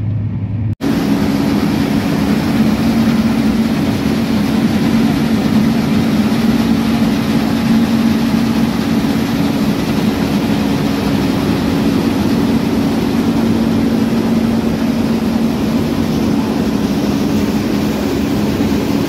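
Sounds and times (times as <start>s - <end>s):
combine harvester engine drone: 0.0s - 19.0s.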